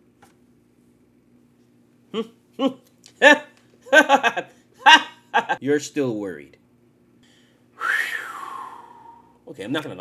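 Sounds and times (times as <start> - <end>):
man's whistled exhale: 7.8 - 9.4.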